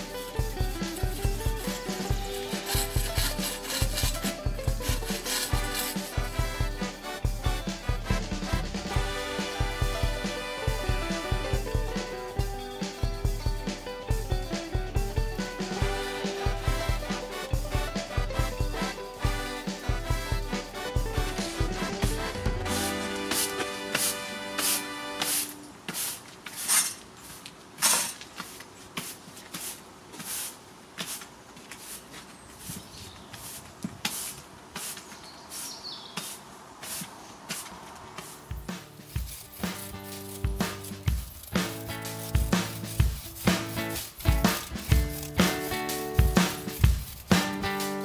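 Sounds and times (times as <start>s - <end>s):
background music with steady beat: 0.0s - 25.6s, 38.2s - 48.0s.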